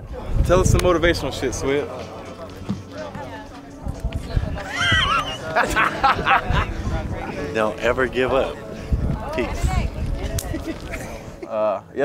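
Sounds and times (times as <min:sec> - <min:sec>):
man laughing: 0:04.7 - 0:06.8.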